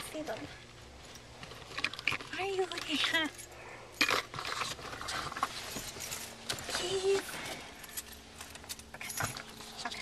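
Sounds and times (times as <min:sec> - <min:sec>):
rustling while rummaging: 0:00.2 - 0:10.0
keys clicking and jingling: 0:05.6 - 0:07.0, 0:07.7 - 0:09.7.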